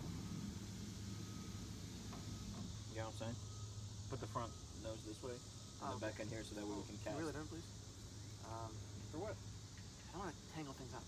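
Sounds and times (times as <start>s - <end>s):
light hiss: 0.0s - 11.0s.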